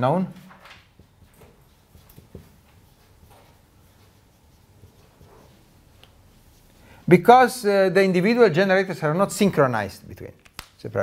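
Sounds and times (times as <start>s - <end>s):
light room hiss: 0.0s - 11.0s
marker strokes on whiteboard: 0.9s - 8.4s.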